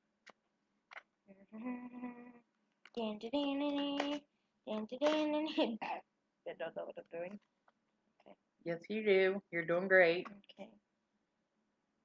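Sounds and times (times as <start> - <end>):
woman humming: 1.3 - 2.5.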